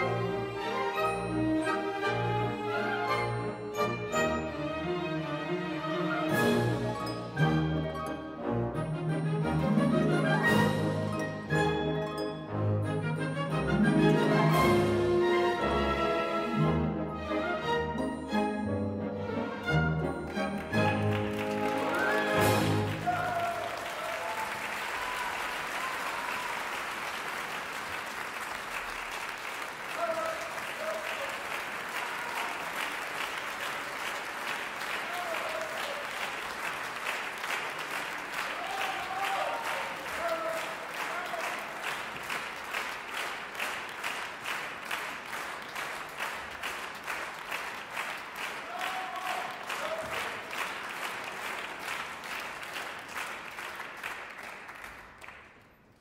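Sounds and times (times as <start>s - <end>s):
audience applauding: 19.6s - 56.0s
crowd shouts: 22.8s - 26.5s, 38.6s - 41.4s, 48.7s - 50.1s.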